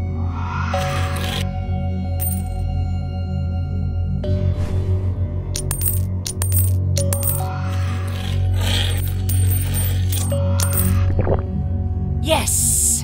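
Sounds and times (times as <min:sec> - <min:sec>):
low music drone: 0:00.0 - 0:13.0
coins clinking into coin slot: 0:02.2 - 0:02.6, 0:05.6 - 0:11.0.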